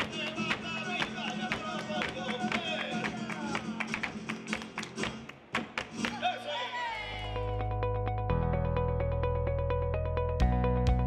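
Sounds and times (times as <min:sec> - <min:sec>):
hand-clapping: 0:00.0 - 0:06.2.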